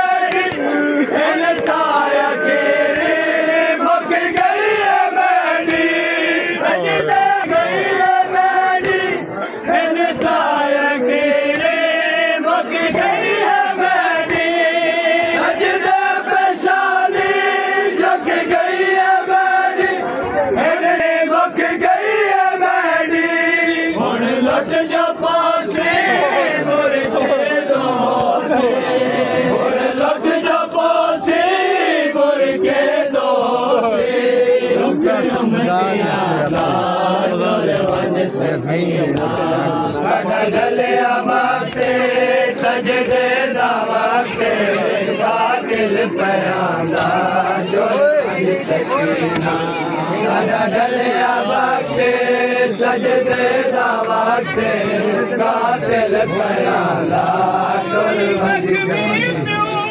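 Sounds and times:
men chanting a lament: 0.0 - 59.9.

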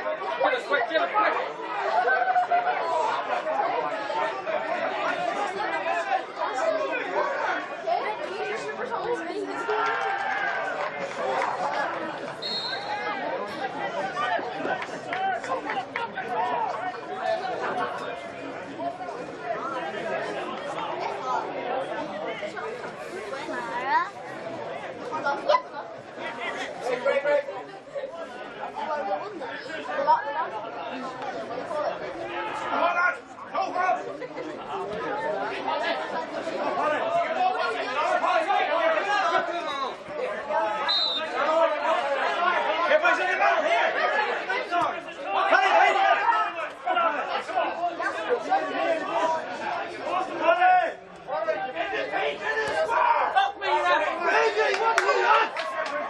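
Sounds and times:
spectators chattering: 0.0 - 56.0.

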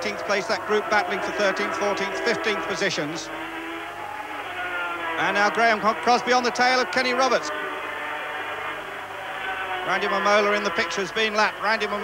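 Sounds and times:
racing motorcycles running past: 0.0 - 12.0.

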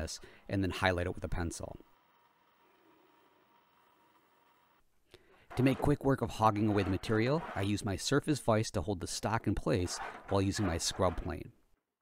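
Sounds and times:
faint steady hum: 1.3 - 5.6.

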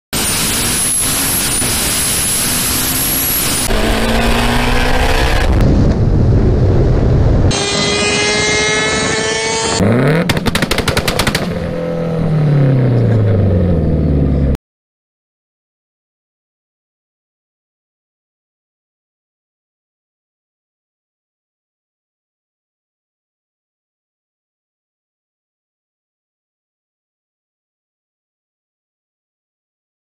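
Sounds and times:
car engine revving: 0.2 - 5.7, 7.5 - 10.5, 11.6 - 14.6
high whine over engine: 0.2 - 10.3, 11.4 - 14.6
exhaust pops and crackles: 10.2 - 11.7.

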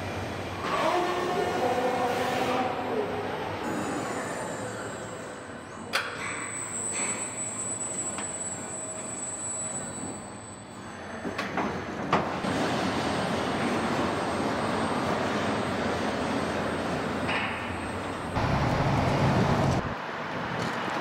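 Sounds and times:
machinery rumble and hiss: 18.0 - 20.0.

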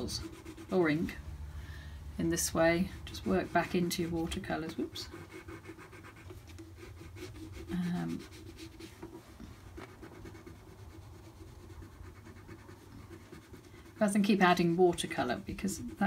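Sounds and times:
pencil scratching on paper: 0.0 - 1.2, 2.3 - 16.0.

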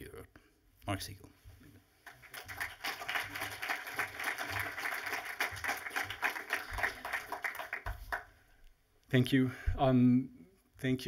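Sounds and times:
audience applauding: 2.0 - 8.4.

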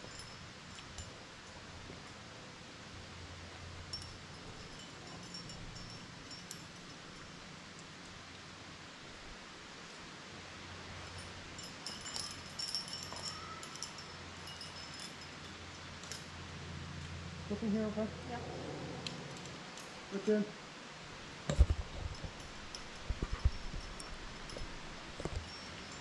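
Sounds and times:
carabiners clinking: 0.0 - 1.2, 3.9 - 7.0, 11.0 - 16.4, 21.5 - 26.0
low outdoor hum: 0.0 - 26.0.

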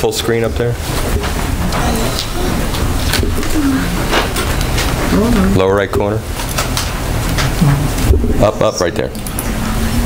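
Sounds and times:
faint voices murmuring: 1.6 - 6.2
sound system low hum: 7.0 - 10.0.

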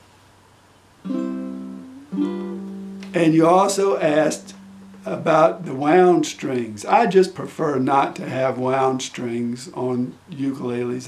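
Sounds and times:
ukulele chord strummed: 1.0 - 6.8.

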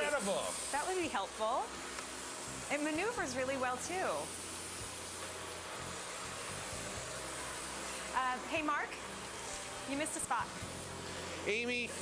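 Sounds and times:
vacuum cleaner on carpet: 0.0 - 12.0.

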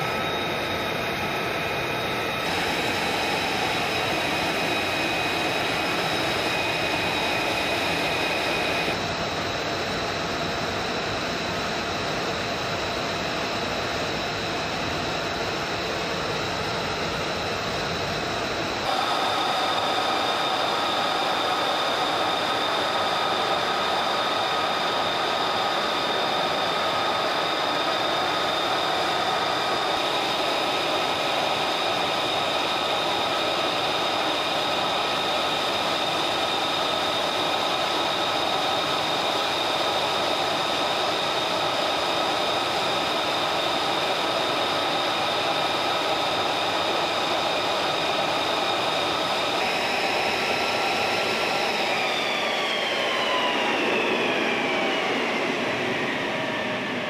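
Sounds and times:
jet engine idling whine: 0.0 - 57.0.

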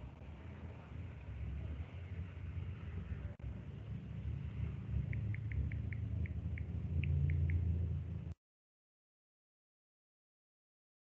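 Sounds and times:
low background rumble: 0.0 - 8.4.

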